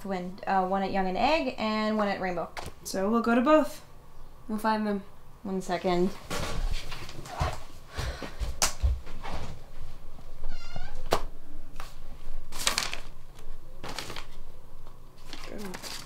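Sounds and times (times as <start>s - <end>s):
paper rustling: 11.8s - 14.5s, 15.2s - 16.0s.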